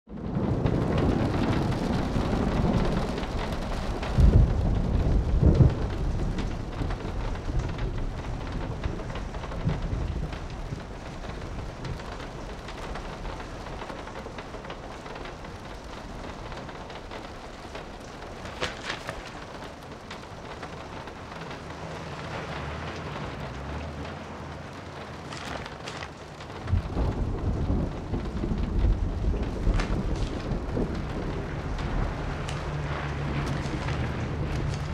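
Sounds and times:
low rolls of thunder: 0:00.1 - 0:34.9
steady rain: 0:00.1 - 0:34.9.

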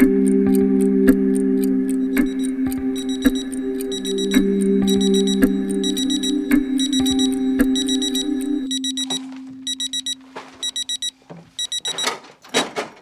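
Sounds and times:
music with low drone: 0:00.0 - 0:10.4
alarm clock beeping: 0:00.0 - 0:12.2.

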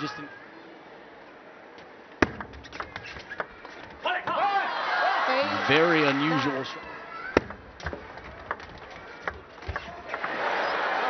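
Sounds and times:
table tennis ball clicks: 0:07.3 - 0:10.4.

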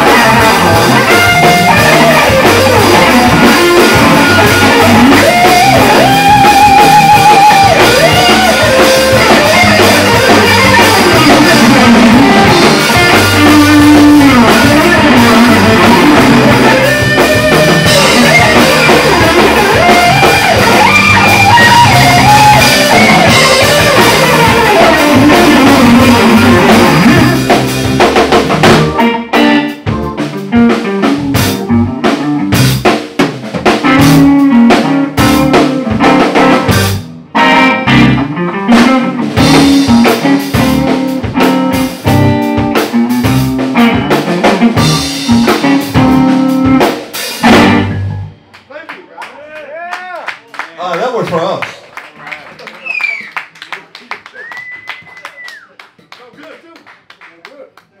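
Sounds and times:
drum kit hitting hard: 0:00.0 - 0:48.5
electric bass: 0:00.0 - 0:48.6
electric guitar: 0:00.0 - 0:48.6
audience clapping: 0:48.5 - 0:58.0
long high whistle: 0:54.3 - 0:55.7.

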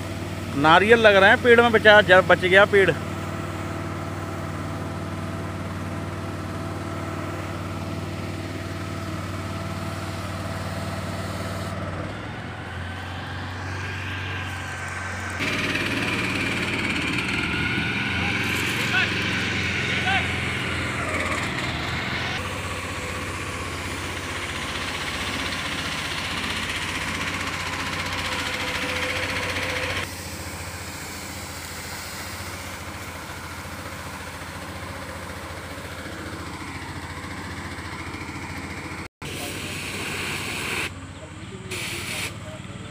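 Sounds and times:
pump engine running: 0:00.0 - 0:42.9
voices: 0:00.5 - 0:03.1, 0:18.0 - 0:21.7, 0:39.3 - 0:42.9
hose jet hissing: 0:07.3 - 0:11.8, 0:22.4 - 0:35.9, 0:39.2 - 0:40.9, 0:41.7 - 0:42.5.

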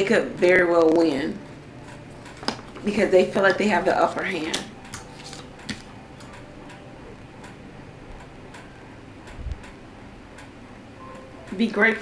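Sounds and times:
room hum: 0:00.0 - 0:12.0
cards clicking and tapping: 0:02.3 - 0:06.5.

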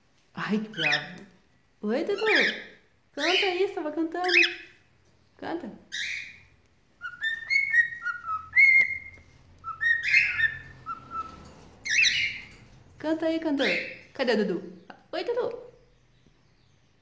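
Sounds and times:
rough bird vocal sounds: 0:05.9 - 0:12.7
cockatiel whistling: 0:07.0 - 0:12.5.

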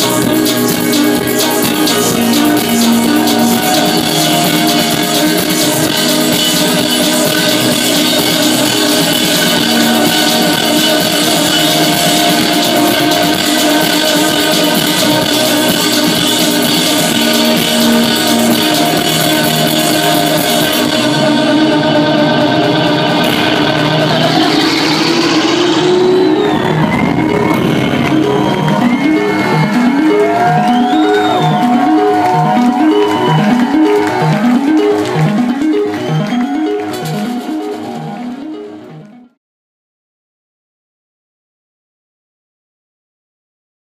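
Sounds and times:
live electronic band music: 0:00.0 - 0:39.3
short falling synth notes: 0:20.8 - 0:39.3.

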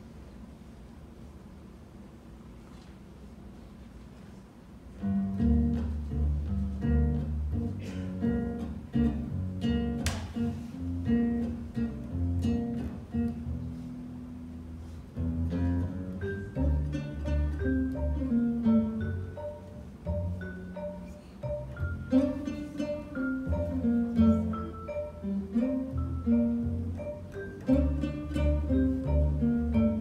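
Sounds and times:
acoustic guitar: 0:05.0 - 0:30.0
plucked upright bass: 0:05.0 - 0:30.0.

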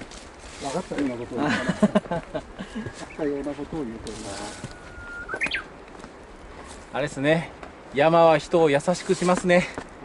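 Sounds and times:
bird singing: 0:03.0 - 0:03.5, 0:04.4 - 0:05.8.

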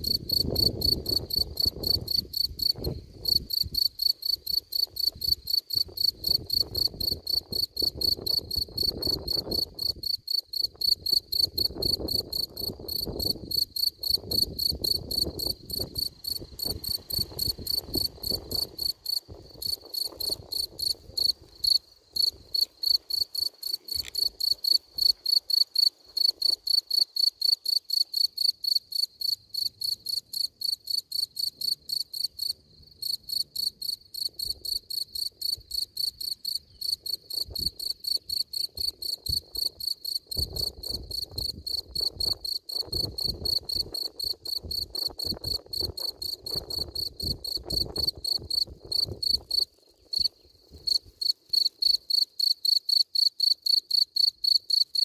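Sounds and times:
cricket chirping: 0:00.0 - 0:55.0.

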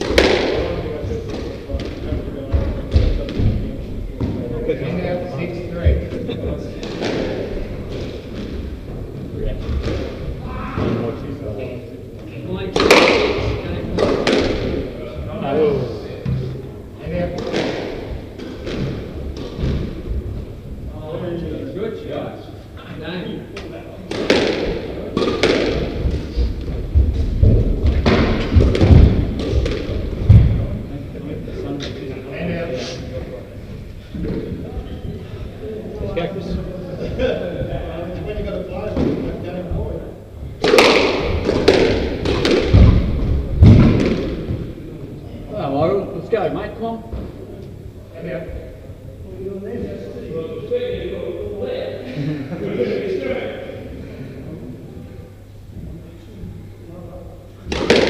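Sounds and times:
faint voices: 0:00.0 - 0:45.6
thuds on squash court: 0:24.1 - 0:30.7, 0:40.6 - 0:44.7.

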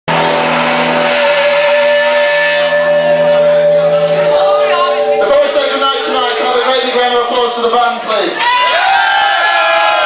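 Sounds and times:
band holding sustained chord: 0:00.2 - 0:07.7.

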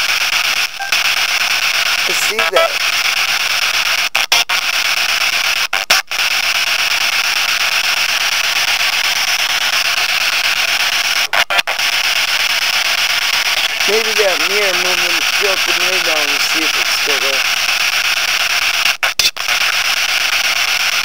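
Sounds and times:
loud static hiss: 0:00.0 - 0:04.1, 0:06.2 - 0:18.8.

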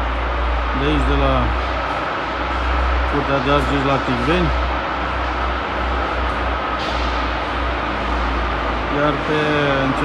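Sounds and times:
low machinery drone: 0:00.0 - 0:10.0
man speaking: 0:08.9 - 0:10.0.

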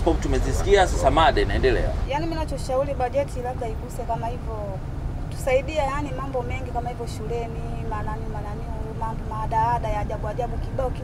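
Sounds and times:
bus rumble: 0:00.0 - 0:11.0
woman talking: 0:02.0 - 0:11.0.

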